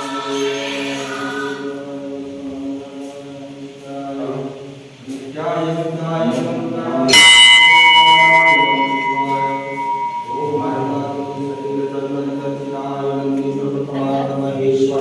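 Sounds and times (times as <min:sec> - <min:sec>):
brass temple bell ringing: 0:07.1 - 0:13.8.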